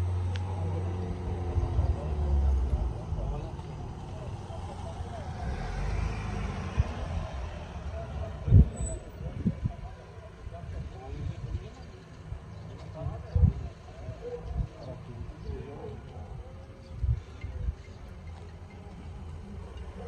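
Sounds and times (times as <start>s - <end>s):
van engines running: 0.0s - 20.0s.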